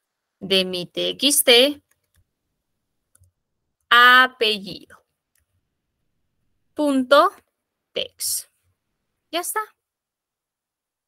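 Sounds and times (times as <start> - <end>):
woman speaking: 0.4 - 1.9, 3.9 - 5.1, 6.7 - 8.6, 9.3 - 9.8.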